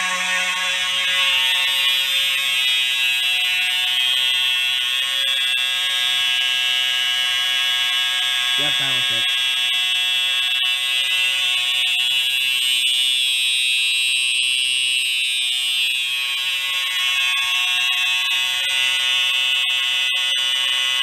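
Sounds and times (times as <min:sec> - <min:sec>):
fire alarm horn tone: 0:00.0 - 0:21.0.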